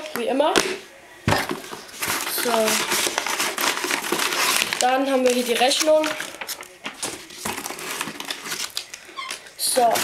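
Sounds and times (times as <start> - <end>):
paper packing crinkling: 1.4 - 10.0.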